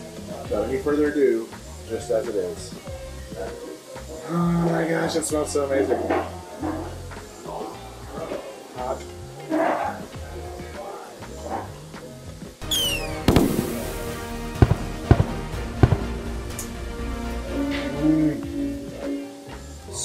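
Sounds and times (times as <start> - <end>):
background music: 0.0 - 20.0
falling firework whistle: 12.6 - 16.1
firework burst: 12.6 - 16.5
sharp crackling pops: 12.6 - 16.7.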